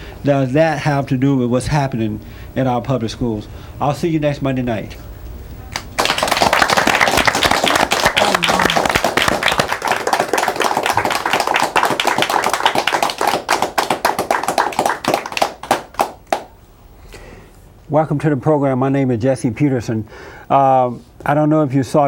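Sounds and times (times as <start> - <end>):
audience applauding: 5.7 - 16.5.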